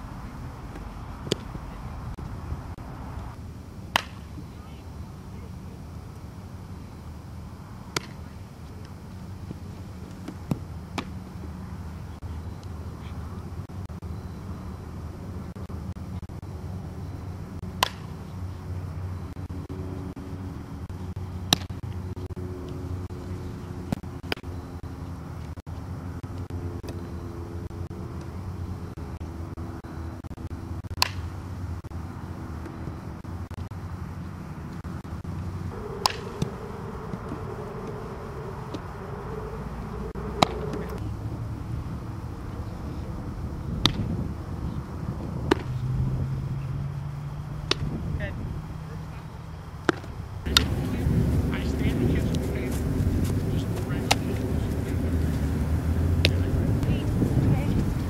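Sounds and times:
low outdoor rumble: 0.0s - 26.8s, 27.6s - 58.0s
ball cracking on bat or glove: 0.7s - 1.6s, 3.9s - 4.3s, 7.9s - 8.2s, 17.8s - 18.2s, 31.0s - 31.3s, 36.0s - 36.4s, 40.3s - 40.9s, 45.5s - 45.7s, 47.7s - 47.9s.

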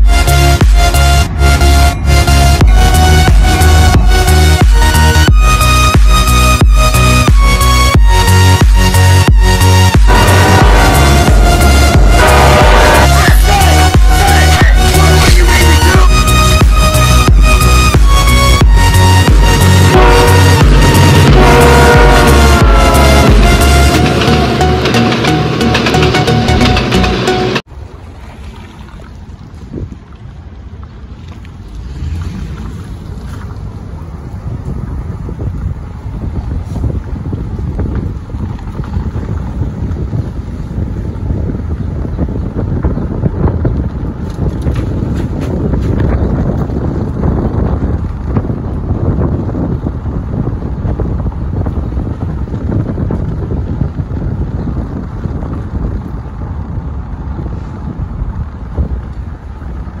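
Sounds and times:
wind buffeting microphone: 0.0s - 26.9s, 27.6s - 60.0s
low road noise rumble: 0.0s - 60.0s.

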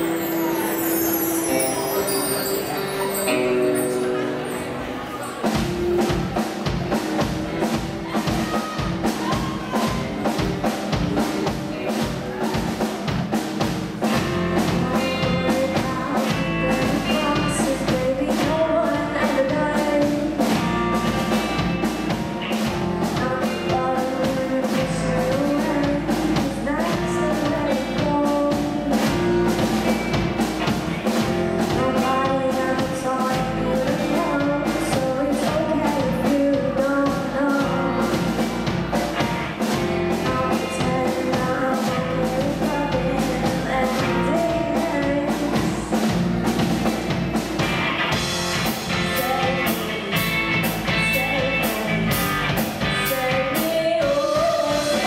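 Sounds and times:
drum kit beat: 0.0s - 4.6s, 5.3s - 55.0s
bass guitar: 0.0s - 55.0s
electric guitar: 0.0s - 55.0s
girl singing into a microphone: 14.5s - 21.5s, 23.1s - 29.5s, 31.6s - 38.4s, 40.1s - 46.0s, 48.9s - 50.4s, 52.8s - 55.0s.

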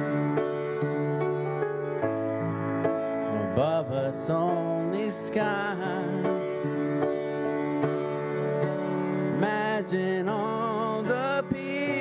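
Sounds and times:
held instrumental accompaniment: 0.0s - 12.0s
person singing: 3.3s - 6.7s, 9.3s - 12.0s.

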